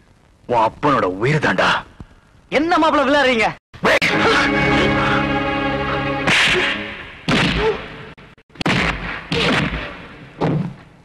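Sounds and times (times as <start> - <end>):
whip-like punch swish: 6.3 - 6.7, 8.7 - 10.6.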